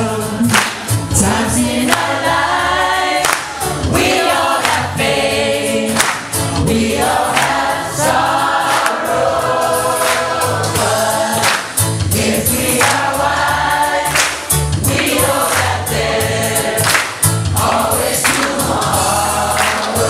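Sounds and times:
choir singing: 0:00.0 - 0:14.2, 0:14.8 - 0:20.0
bass line and beat: 0:00.0 - 0:20.0.

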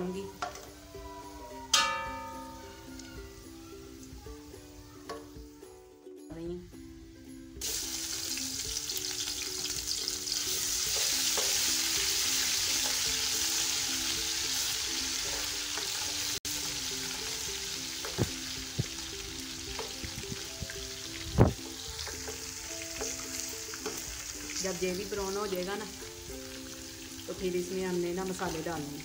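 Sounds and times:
paste sizzling in hot oil: 0:07.6 - 0:29.0.

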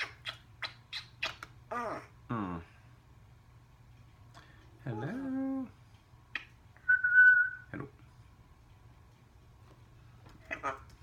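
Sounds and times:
parrot whistling: 0:06.3 - 0:07.7.

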